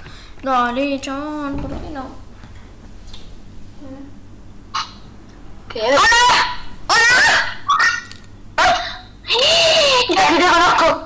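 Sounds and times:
bark-like yelps: 0:05.9 - 0:09.0.

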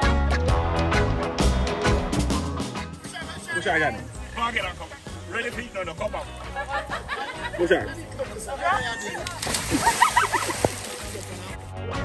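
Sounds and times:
music: 0:00.0 - 0:12.0
person splashing into water: 0:09.2 - 0:11.5.

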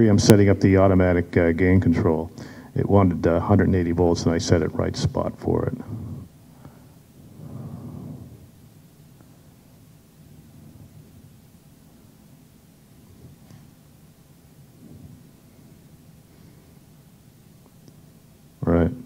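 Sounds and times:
faint low rumble: 0:00.0 - 0:19.0.

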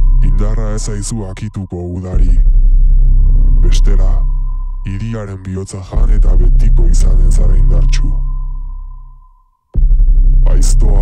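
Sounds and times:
electronic pop beat and bass: 0:00.0 - 0:08.5, 0:09.8 - 0:11.0
steady high synth tone: 0:00.0 - 0:11.0.

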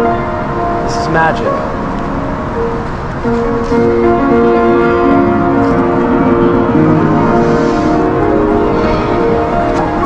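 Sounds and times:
piano playing slow chords: 0:00.0 - 0:10.0.

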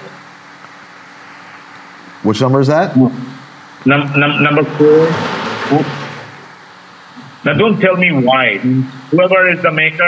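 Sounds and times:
low ventilation hum: 0:00.0 - 0:10.0.

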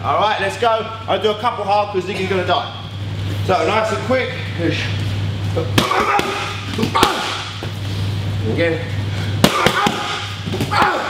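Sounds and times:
boxing gloves smacking pads: 0:05.8 - 0:07.7, 0:09.4 - 0:11.0.

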